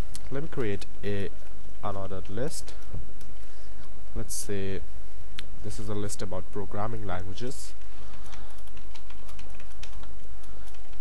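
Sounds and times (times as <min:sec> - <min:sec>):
keyboard typing clicks: 0:07.8 - 0:11.0.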